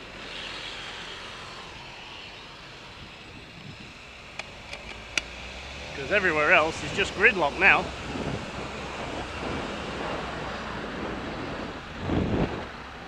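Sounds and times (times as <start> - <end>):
traffic and road noise: 0.0 - 13.0
sharp clicks: 4.3 - 5.3.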